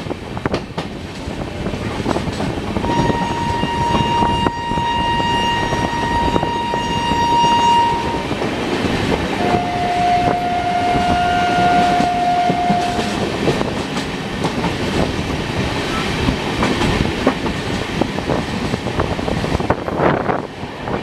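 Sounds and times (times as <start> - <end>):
passing train alongside: 0.0 - 21.0
train rolling and wheel clatter: 0.0 - 21.0
long train horn: 2.8 - 8.4, 9.4 - 13.4.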